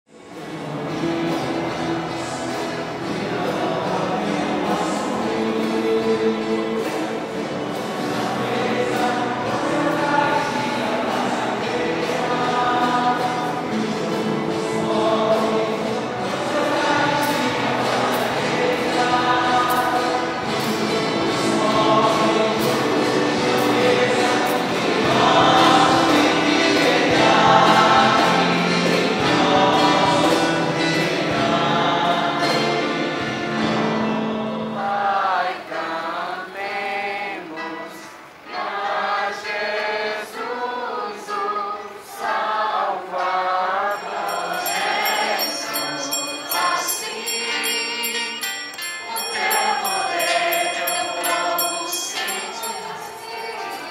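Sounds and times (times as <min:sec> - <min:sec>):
choir singing a hymn: 0:00.1 - 0:53.9.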